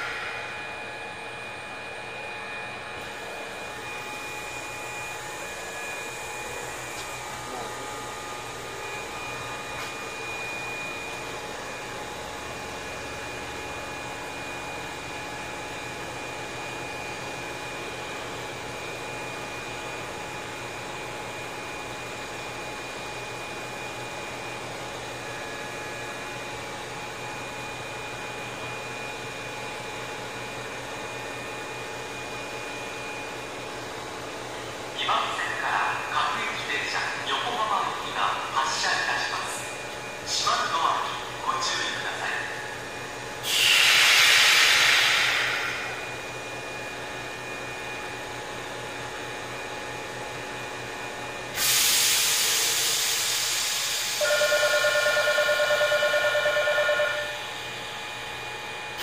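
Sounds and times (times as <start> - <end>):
electric train equipment humming: 0.0 - 59.0.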